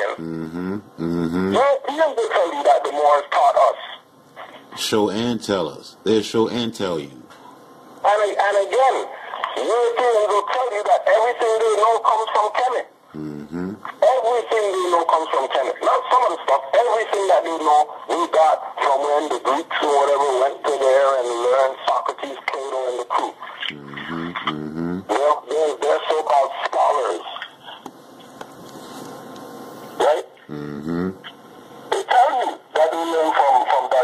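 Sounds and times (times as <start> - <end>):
low buzzing sound: 0.2 - 1.6, 13.1 - 13.9, 23.7 - 25.1, 29.2 - 31.9
person speaking over radio: 8.1 - 27.8, 31.9 - 34.0.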